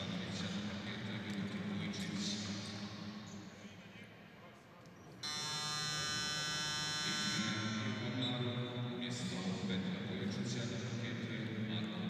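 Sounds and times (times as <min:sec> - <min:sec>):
harsh game horn buzz: 0:05.2 - 0:08.3.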